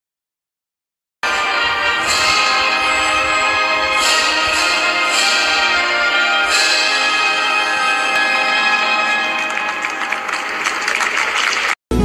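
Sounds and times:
ceremony music: 1.2 - 12.0
audience applause: 8.2 - 11.8.

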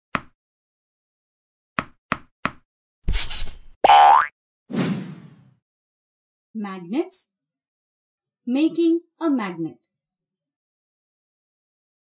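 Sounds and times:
springy boing: 3.9 - 4.3.

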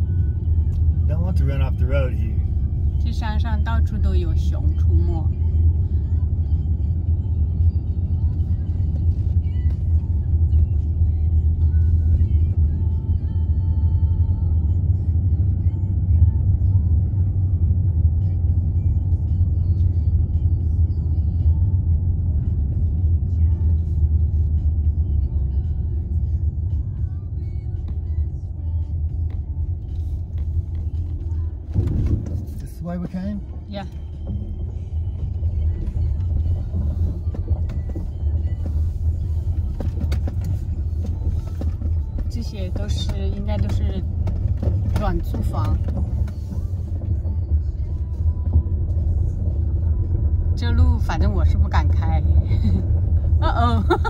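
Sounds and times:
car engine and tyres rumbling: 0.0 - 54.0.

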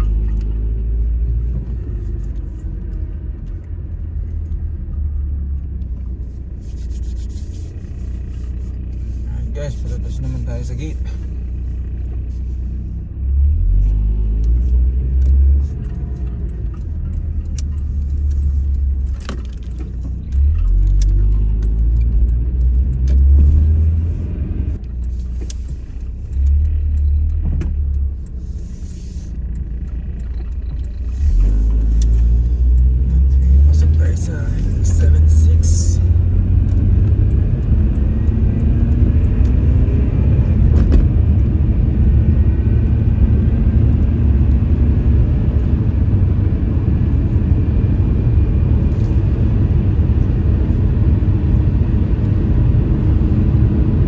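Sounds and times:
car driving rumble from inside: 0.0 - 54.0.

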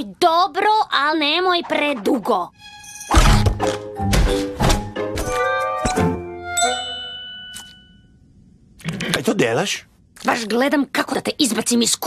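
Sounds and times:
bell-like ding: 6.5 - 8.1.

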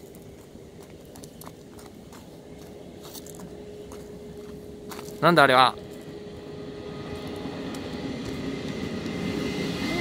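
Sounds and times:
electric locomotive running: 0.0 - 10.0.

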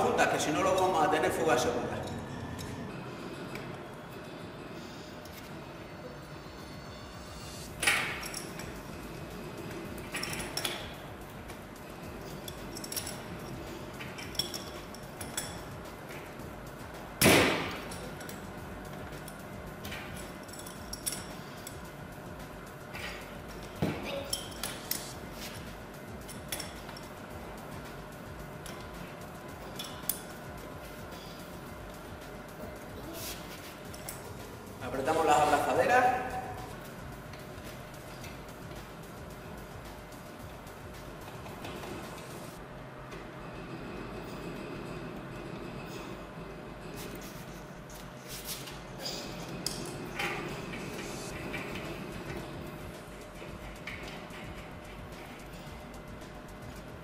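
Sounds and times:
metallic clinks of pipe fittings: 12.4 - 13.2, 14.1 - 15.7, 19.2 - 21.9, 24.3 - 25.1, 26.2 - 27.1.

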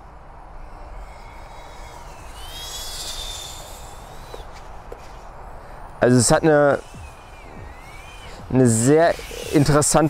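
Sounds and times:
quadcopter propeller whine: 0.0 - 10.0.

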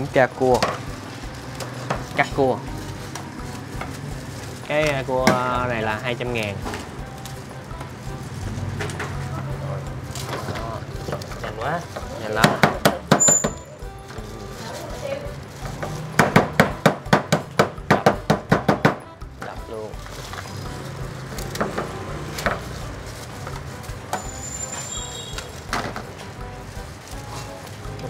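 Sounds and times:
knife chopping on wooden board: 12.0 - 13.3, 15.7 - 19.0.

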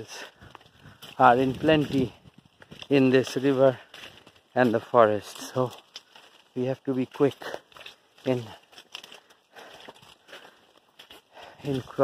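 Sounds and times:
faint footsteps: 0.0 - 12.0
leaves and branches rustling: 0.0 - 12.0.

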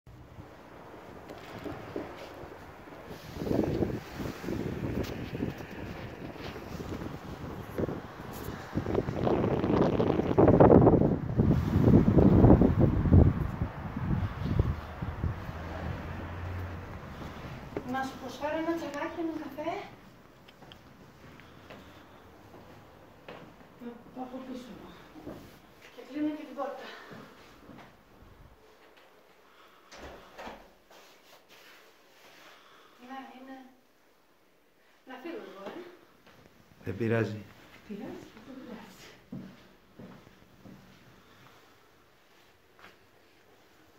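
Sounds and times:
faint knocks and rustles: 1.2 - 8.6
wind buffeting microphone: 1.2 - 17.9.

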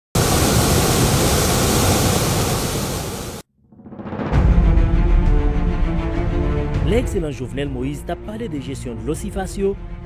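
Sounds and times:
water rushing from pipes: 0.2 - 3.4.

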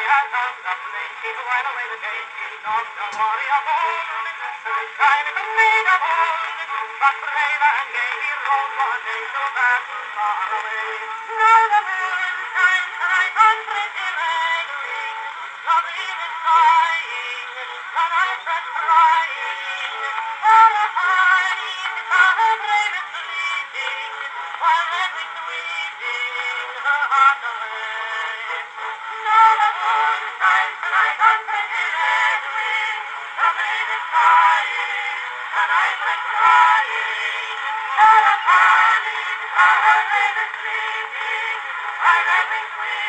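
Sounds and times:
phonograph playing a vocal song: 0.0 - 43.0.

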